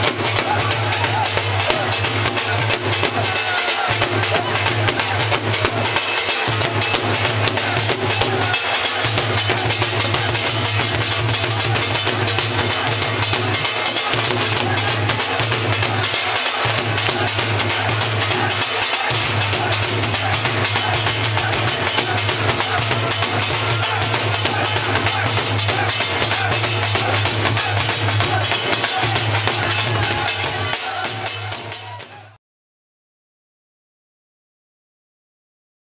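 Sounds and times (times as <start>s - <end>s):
fast drumming: 0.0s - 32.4s.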